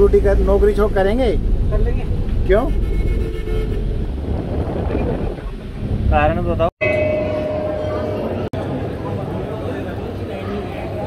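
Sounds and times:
van engine and road rumble: 0.0s - 6.7s.

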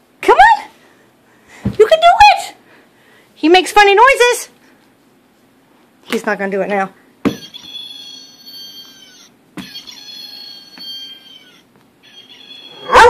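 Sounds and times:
squeaky dog toy squealing: 7.3s - 13.0s.

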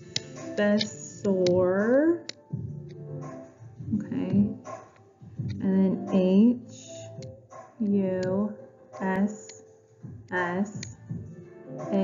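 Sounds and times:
woman spelling out letters: 0.6s - 2.3s, 5.6s - 7.2s, 7.8s - 9.6s, 10.3s - 10.9s.

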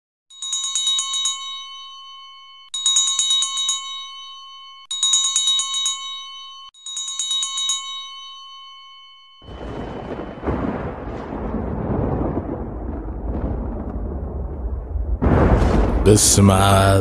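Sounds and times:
high-pitched bell ringing: 0.3s - 10.8s.

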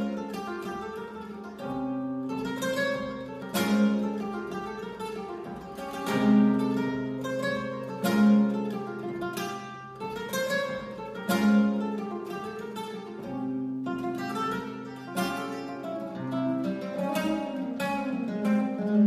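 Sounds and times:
flamenco guitar playing: 0.0s - 19.0s.

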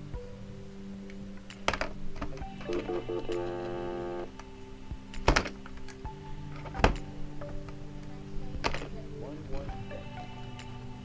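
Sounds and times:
background music: 0.0s - 11.0s
steady phone tone: 2.5s - 4.3s.

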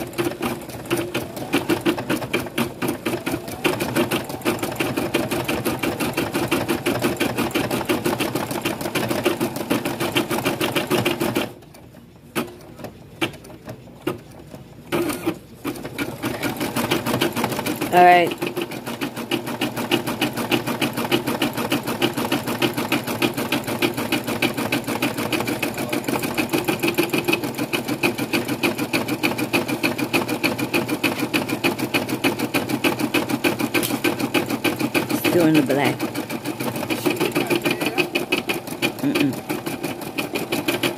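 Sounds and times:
embroidery machine stitching: 0.0s - 40.9s.

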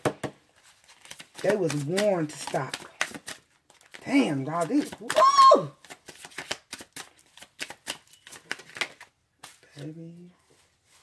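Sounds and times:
cards being shuffled: 0.6s - 9.9s.

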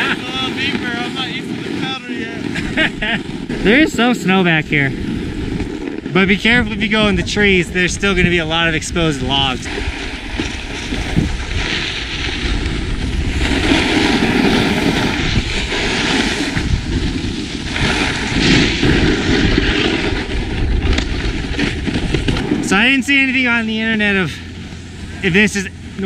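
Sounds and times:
snowboard carving over snow: 0.0s - 26.0s
wind rushing over microphone: 0.0s - 26.0s.

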